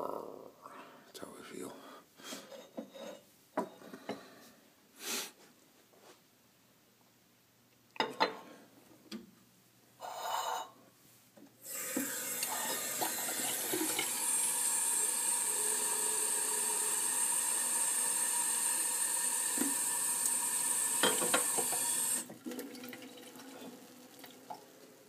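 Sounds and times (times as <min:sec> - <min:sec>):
faucet water running into a mug: 0:11.6 - 0:25.0.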